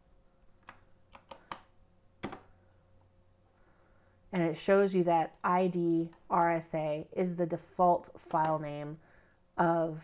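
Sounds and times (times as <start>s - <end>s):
keyboard keys clicking: 0.6s - 2.5s.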